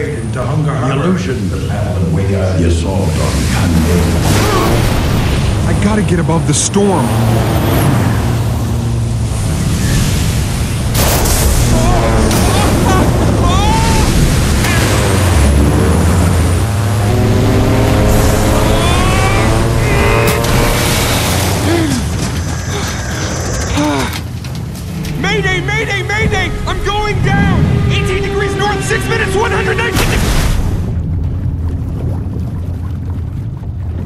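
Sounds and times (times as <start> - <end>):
wind and rain: 0.0 - 34.0
propeller plane engine droning: 11.7 - 29.9
person straining cries and grunts: 11.8 - 14.2, 18.6 - 20.4.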